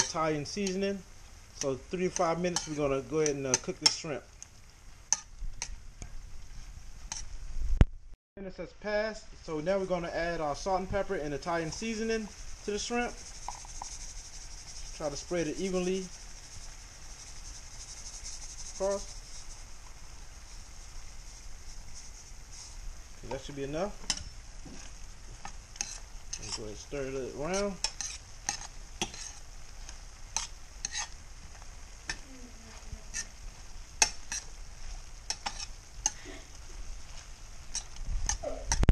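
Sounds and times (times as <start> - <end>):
shrimp sizzling in a frying pan: 0.0 - 7.5, 9.2 - 38.9
fork tapping against a pan: 34.0 - 34.4.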